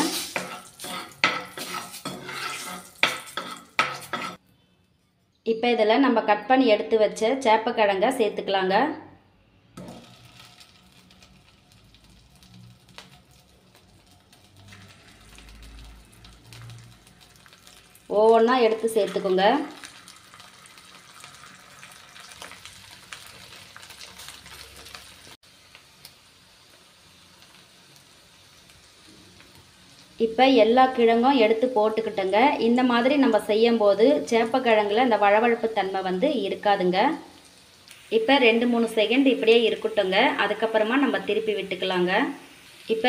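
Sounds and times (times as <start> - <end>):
oil sizzling in a frying pan: 0.0 - 4.4, 9.7 - 43.0.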